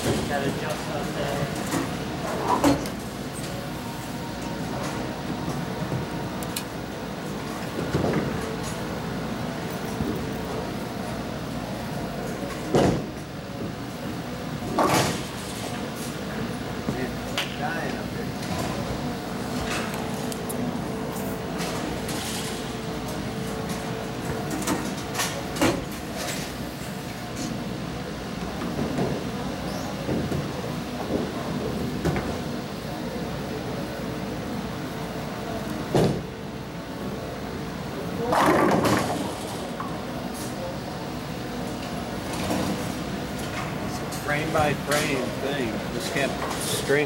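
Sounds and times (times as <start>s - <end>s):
bowling alley background noise: 0.0s - 47.0s.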